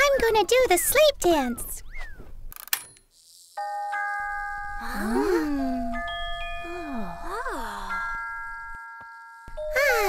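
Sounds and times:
bell-like chime: 3.6 - 10.0.

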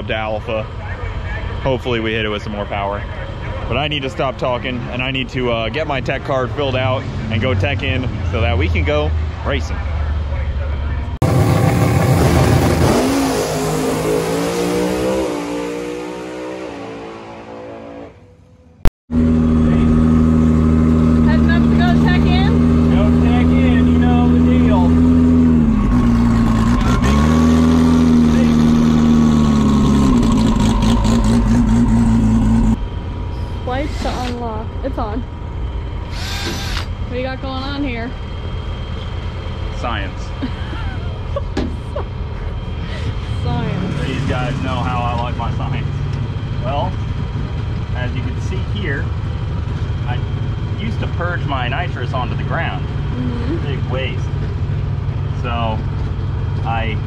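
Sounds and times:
loud engine sound: 0.0 - 57.0
race car engine running: 19.1 - 57.0.

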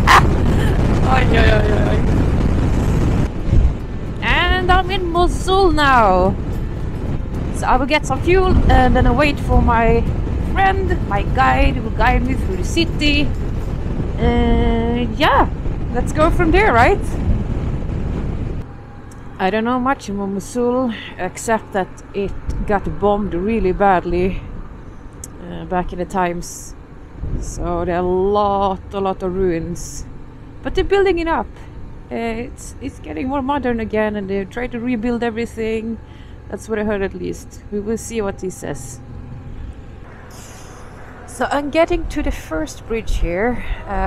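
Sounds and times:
motorcycle engine: 0.0 - 25.1, 28.0 - 43.6
road noise: 0.0 - 44.0
wind rushing over microphone: 0.0 - 44.0.

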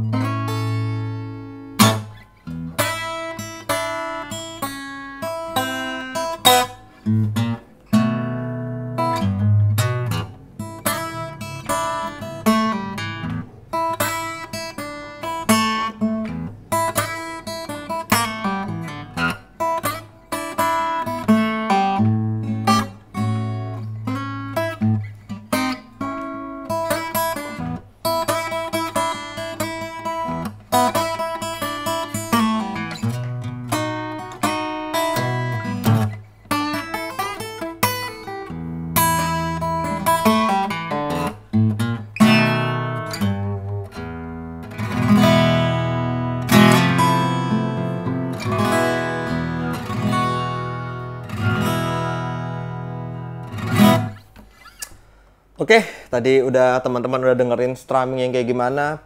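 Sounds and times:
strummed guitar chords: 0.0 - 55.2
acoustic guitar melody: 0.0 - 55.6.

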